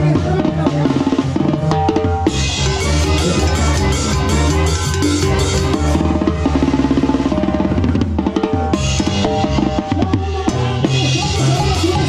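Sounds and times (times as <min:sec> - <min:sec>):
tuba: 0:00.0 - 0:12.0
brass horns: 0:02.3 - 0:12.0.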